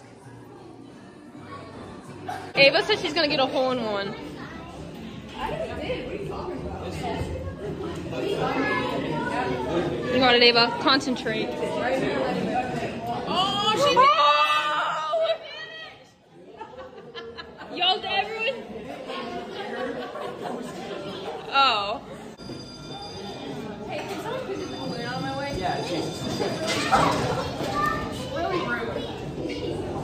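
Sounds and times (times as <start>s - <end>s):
background chatter of voices: 0.0s - 30.0s.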